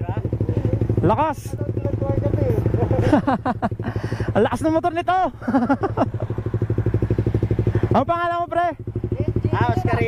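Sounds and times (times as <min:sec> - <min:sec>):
motorcycle engine idling: 0:00.0 - 0:10.0
voices talking: 0:00.0 - 0:10.0.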